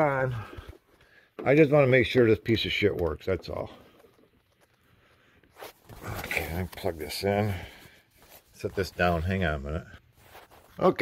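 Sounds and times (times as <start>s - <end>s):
handling rustle: 2.5s - 11.0s.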